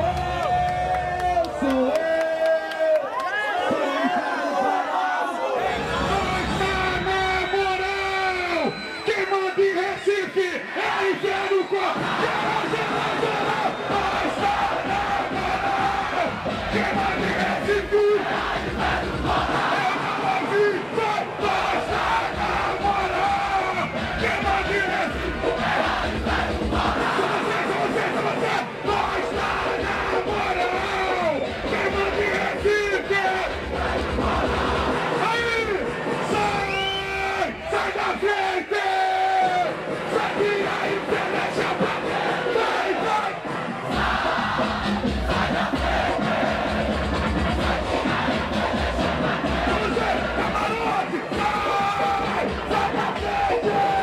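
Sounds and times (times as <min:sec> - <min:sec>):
crowd shouting and chanting: 0:00.0 - 0:54.0.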